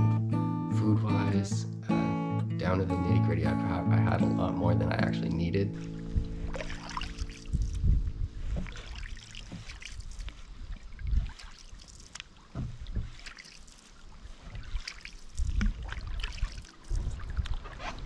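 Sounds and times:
low rumbles: 0:01.5 - 0:09.4
paddle splashing in water: 0:05.7 - 0:18.0
water dripping: 0:05.8 - 0:08.0, 0:08.6 - 0:17.7.

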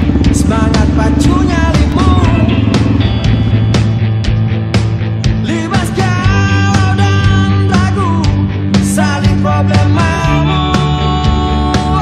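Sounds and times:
rock music with drumbeat: 0:00.0 - 0:12.0.

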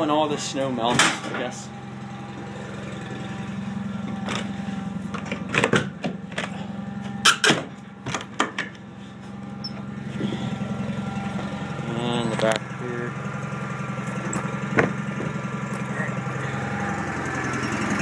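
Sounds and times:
tractor engine running: 0:00.0 - 0:18.0.

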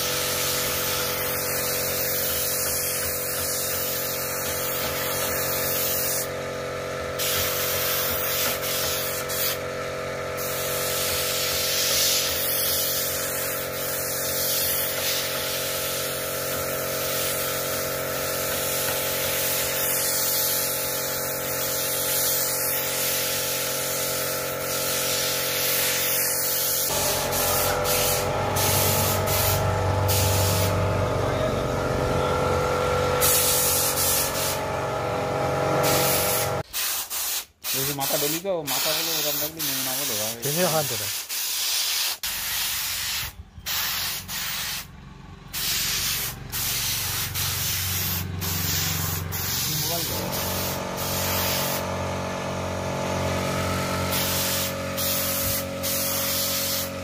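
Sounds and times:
spray gun hissing: 0:00.0 - 0:06.4, 0:07.2 - 0:09.7, 0:10.4 - 0:31.0, 0:33.2 - 0:34.7, 0:35.8 - 0:44.9, 0:45.5 - 0:52.0, 0:54.0 - 0:57.0
machine hum: 0:26.9 - 0:36.6, 0:46.2 - 0:57.0.

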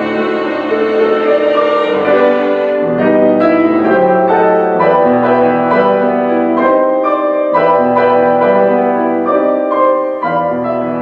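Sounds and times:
sustained bowed strings: 0:00.0 - 0:06.2
piano chords: 0:00.0 - 0:11.0.

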